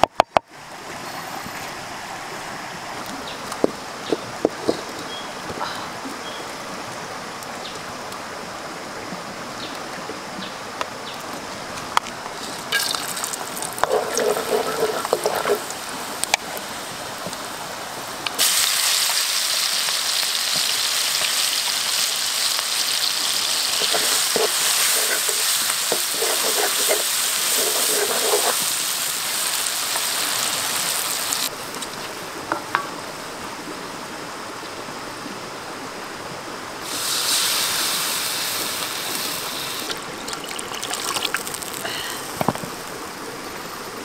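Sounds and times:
hot oil sizzling in wok: 12.4s - 17.0s, 18.4s - 31.5s, 36.8s - 42.0s.

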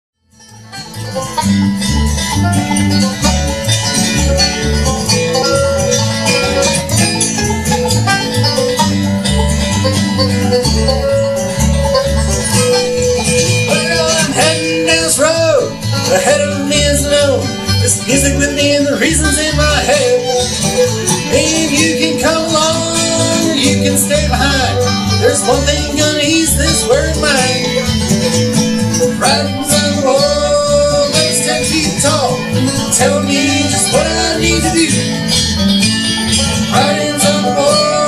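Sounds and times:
acoustic guitar: 0.2s - 38.0s
banjo: 0.2s - 38.0s
upright bass: 0.2s - 38.0s
fiddle: 0.4s - 38.0s.

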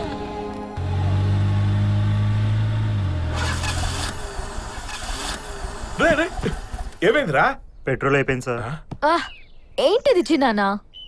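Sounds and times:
car engine hum: 0.0s - 7.0s.

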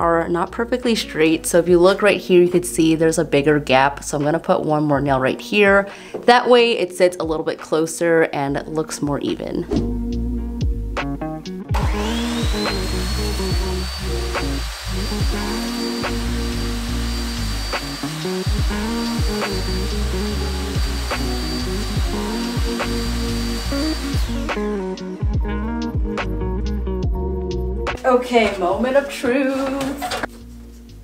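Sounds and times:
music with steady beat: 9.7s - 28.9s
miter saw motor whine: 11.8s - 25.0s
saw blade cutting trim: 11.8s - 25.0s.

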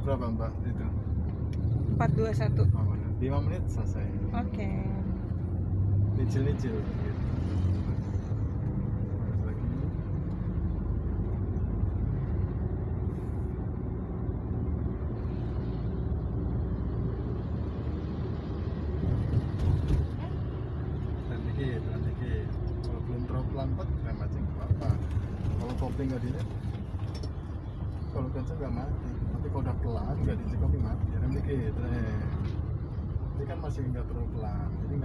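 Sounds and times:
car engine and road rumble: 0.0s - 35.0s.

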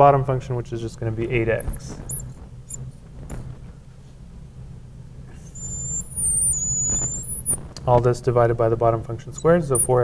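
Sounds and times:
low steady hum: 0.0s - 10.0s
marker squeaking on glass: 1.5s - 3.6s, 5.3s - 8.0s, 9.2s - 10.0s.

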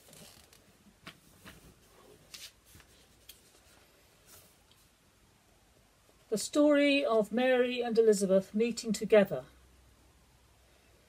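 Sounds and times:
paper rustling: 0.0s - 4.6s.

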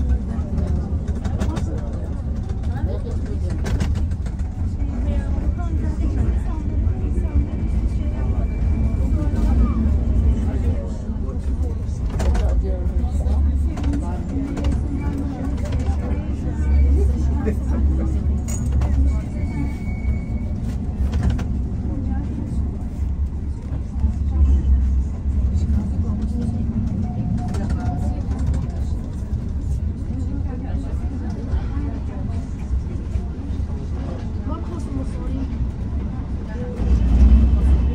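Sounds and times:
people's voices: 0.0s - 37.9s
tram rumbling: 0.0s - 37.9s.

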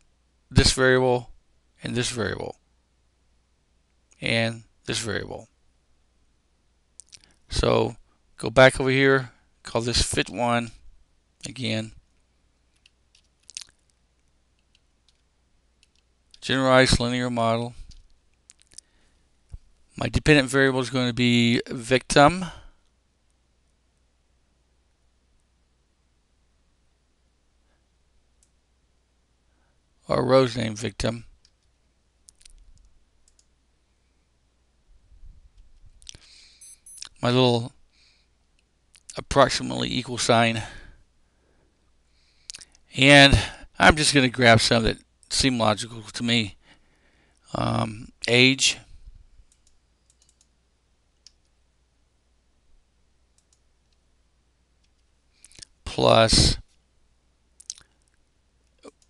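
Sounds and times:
computer mouse clicks: 12.7s - 14.0s, 14.6s - 16.4s, 31.4s - 33.5s, 49.5s - 50.6s, 53.4s - 54.0s.

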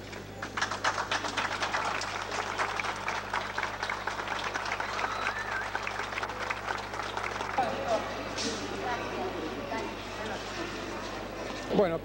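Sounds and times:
crowd applauding: 0.0s - 8.8s.

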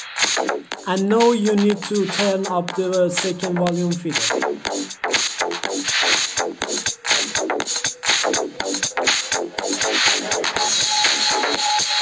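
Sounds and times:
electronic dance music beat: 0.0s - 12.0s.

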